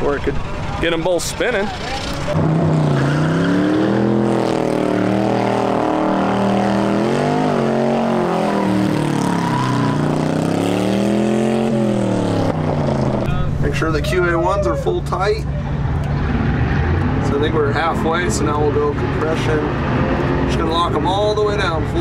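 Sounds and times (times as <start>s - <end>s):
car engine revving: 1.7s - 13.8s, 15.7s - 22.0s.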